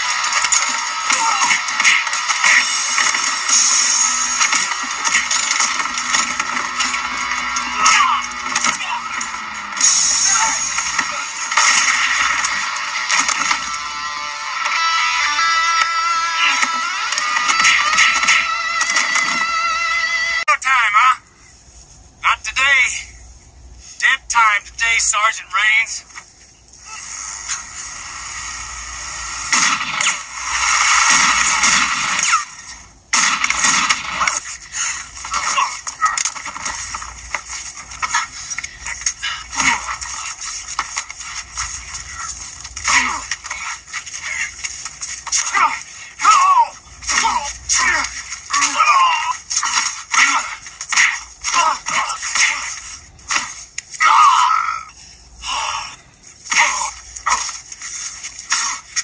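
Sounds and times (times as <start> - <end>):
action film music: 0.0 - 20.4
sharp hits and crashes: 29.5 - 38.1.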